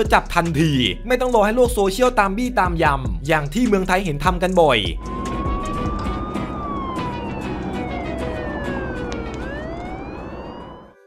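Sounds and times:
police siren wailing: 0:04.9 - 0:11.0
road noise: 0:05.0 - 0:10.9.

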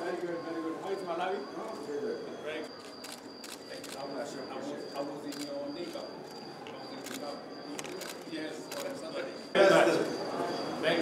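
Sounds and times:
low background talk: 0:00.0 - 0:11.0
camera shutters clicking: 0:07.0 - 0:09.0.

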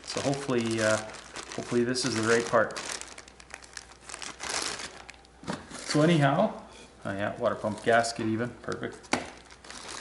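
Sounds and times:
plastic bag crinkling: 0:00.0 - 0:06.2, 0:07.5 - 0:10.0.

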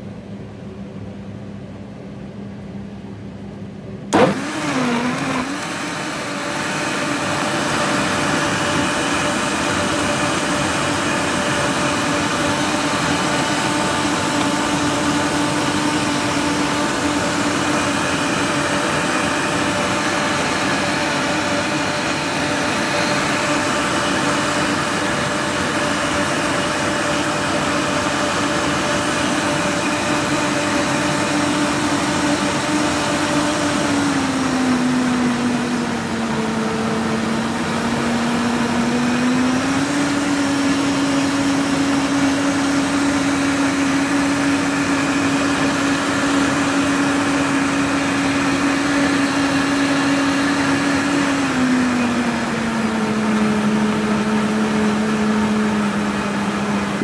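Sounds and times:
blender motor running: 0:04.2 - 0:57.0.

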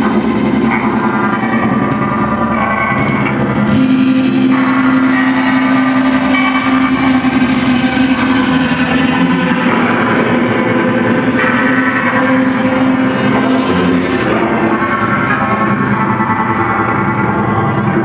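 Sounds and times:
electric guitar drone: 0:00.0 - 0:18.0
higher sustained guitar tones: 0:00.0 - 0:18.0.

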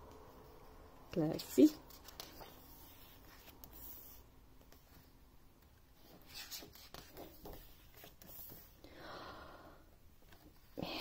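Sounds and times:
book pages turning: 0:01.3 - 0:08.7.

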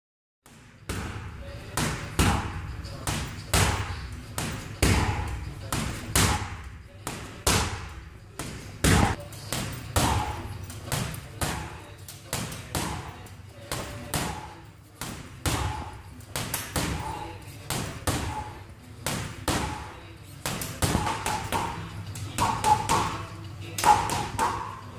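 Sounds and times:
boxing gloves punching heavy bag: 0:00.9 - 0:19.9, 0:20.5 - 0:24.9.

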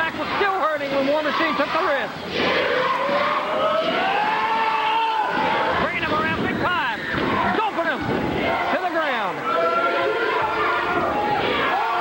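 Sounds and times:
crowd shouting and jeering: 0:00.0 - 0:12.0.

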